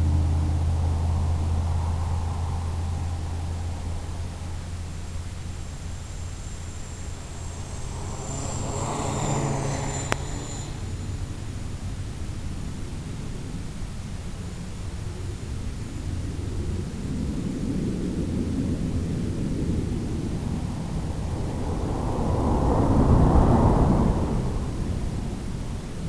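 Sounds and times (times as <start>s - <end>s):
rushing wind: 0.0s - 26.0s
model airplane motor: 4.3s - 12.8s.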